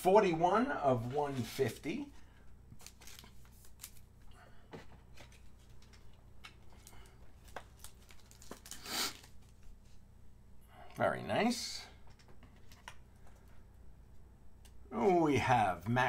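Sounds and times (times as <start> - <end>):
card rustle: 1.0 - 10.0.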